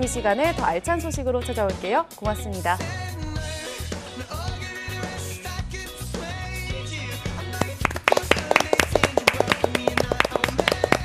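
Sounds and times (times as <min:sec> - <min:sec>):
theme music: 0:07.0 - 0:11.0
people clapping: 0:07.5 - 0:11.0.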